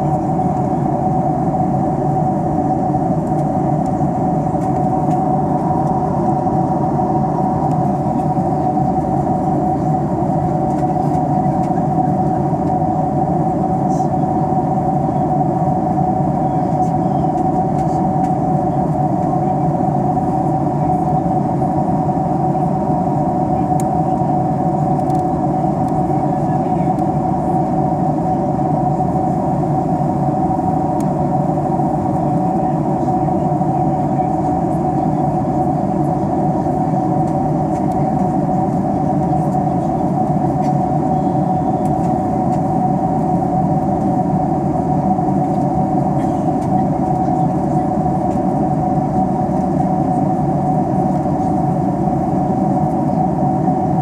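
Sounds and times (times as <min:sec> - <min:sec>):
jet engine and airflow drone: 0:00.0 - 0:54.0
steady cabin hum: 0:00.0 - 0:54.0.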